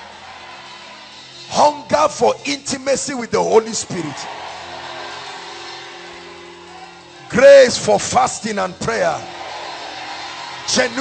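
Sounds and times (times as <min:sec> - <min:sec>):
echo of spoken words: 0:01.5 - 0:04.3, 0:07.2 - 0:09.3, 0:10.7 - 0:11.0.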